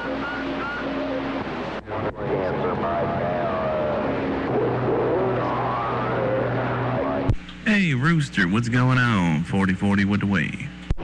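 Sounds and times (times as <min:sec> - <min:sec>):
faint garbled distant voices: 0:00.0 - 0:07.8
radio static hiss: 0:00.0 - 0:11.0.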